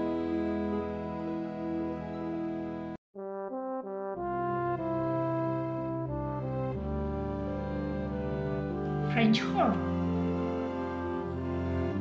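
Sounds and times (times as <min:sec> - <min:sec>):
music: 0:00.0 - 0:12.0
tuba playing: 0:03.2 - 0:12.0.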